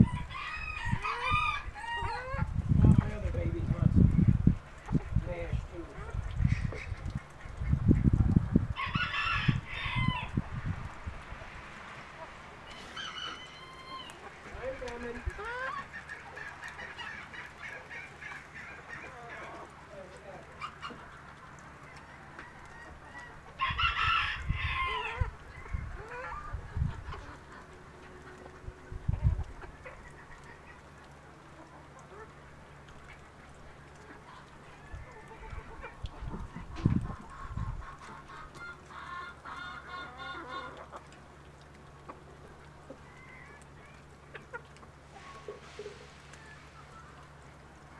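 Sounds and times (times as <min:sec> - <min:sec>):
chickens clucking: 0:00.0 - 0:47.9
rooster crowing: 0:08.8 - 0:10.4, 0:12.7 - 0:14.2, 0:23.6 - 0:25.2.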